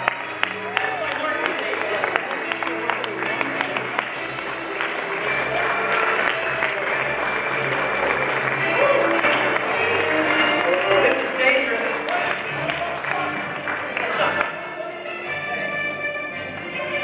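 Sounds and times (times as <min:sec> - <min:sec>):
audience applauding: 0:00.0 - 0:14.8
music playing: 0:00.0 - 0:17.0.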